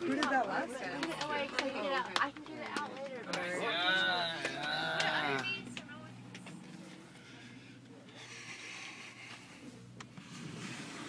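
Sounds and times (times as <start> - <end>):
men talking: 2.6 - 5.5
men laughing: 3.4 - 5.6.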